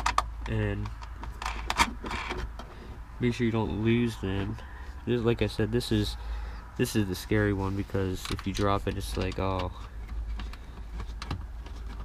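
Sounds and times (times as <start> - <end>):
nut threading clicks and scraping: 0.0 - 2.8, 8.1 - 12.0.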